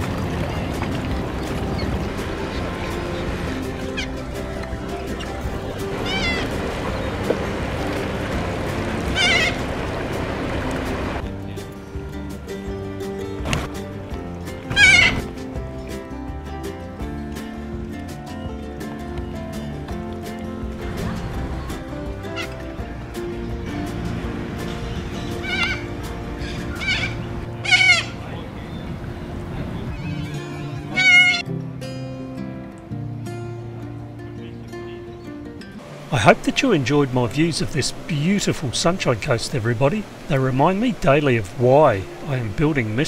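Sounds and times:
wavering bird calls: 0.0 - 10.9, 14.6 - 16.0, 21.1 - 31.5
faint music: 0.0 - 43.0
cockatoos screeching: 1.4 - 7.2, 9.0 - 9.7, 14.7 - 15.4, 22.3 - 22.7, 24.6 - 28.2, 29.9 - 31.4.

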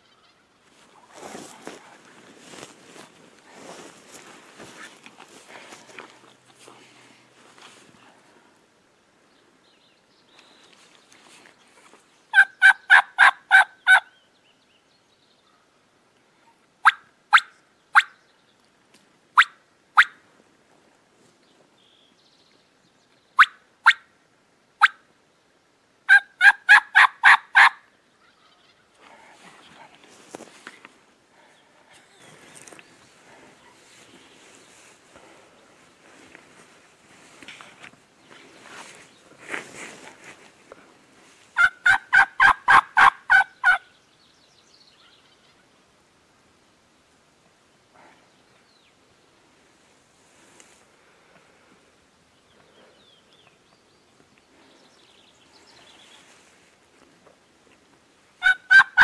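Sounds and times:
turkey gobbling: 12.4 - 14.1, 26.1 - 27.8, 41.6 - 43.8, 58.4 - 59.0.

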